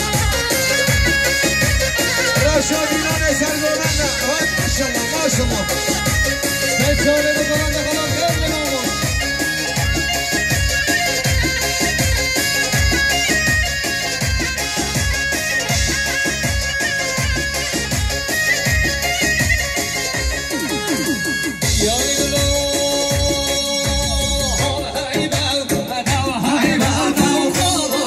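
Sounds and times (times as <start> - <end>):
folk dance music with lute and keyboard: 0.0 - 28.0.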